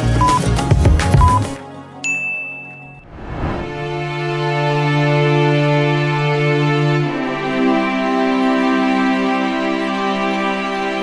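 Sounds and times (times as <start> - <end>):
soft background music: 0.0 - 3.0
bright ding: 2.0 - 3.0.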